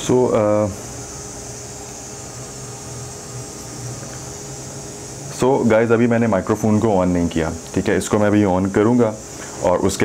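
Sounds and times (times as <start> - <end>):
speaker hiss with low hum: 0.0 - 10.0.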